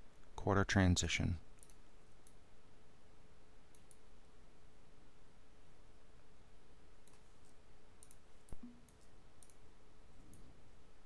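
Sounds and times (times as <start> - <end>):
low room hum: 0.0 - 11.0
computer mouse clicks: 1.6 - 2.4, 3.7 - 4.0, 7.0 - 9.6, 10.3 - 10.5.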